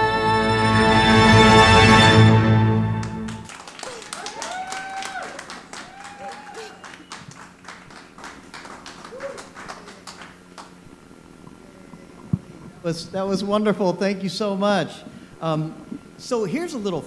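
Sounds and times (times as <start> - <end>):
people clapping: 3.0 - 10.8
short cheering calls: 3.6 - 10.7.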